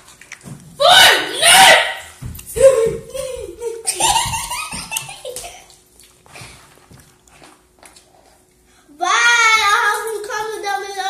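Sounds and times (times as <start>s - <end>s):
children talking: 8.9s - 11.0s.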